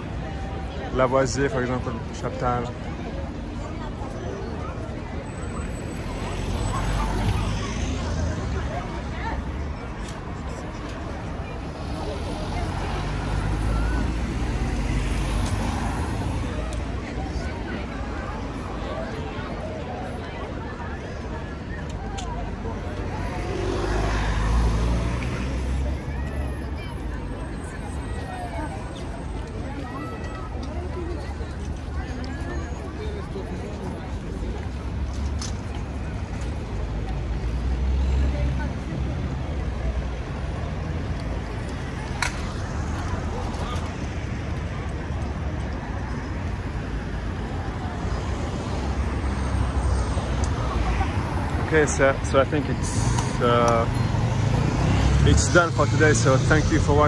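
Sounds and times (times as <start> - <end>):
crowd chatter: 0.0 - 57.0
traffic hum: 0.0 - 57.0
vehicle rumble: 0.0 - 57.0
voices: 0.0 - 57.0.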